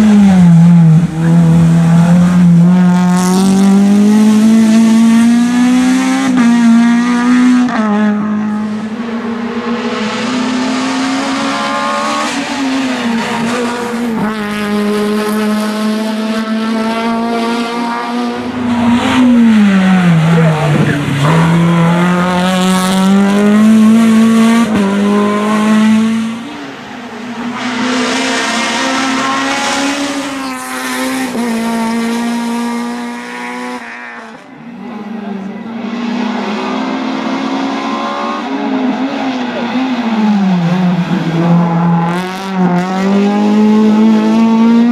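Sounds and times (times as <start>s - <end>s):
race car engine revving: 0.0s - 44.9s.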